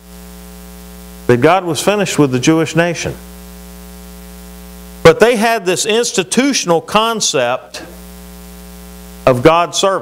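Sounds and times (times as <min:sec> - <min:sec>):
electrical mains hum: 0:00.0 - 0:10.0
man speaking: 0:01.3 - 0:03.2, 0:05.0 - 0:08.0, 0:09.2 - 0:10.0.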